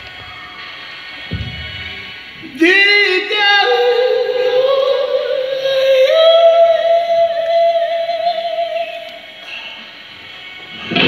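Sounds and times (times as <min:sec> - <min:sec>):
man singing a long high note: 0:02.4 - 0:09.4.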